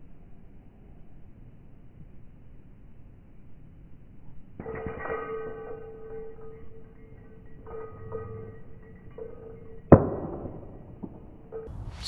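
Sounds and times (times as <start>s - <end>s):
disc striking metal chains: 4.6s - 12.0s.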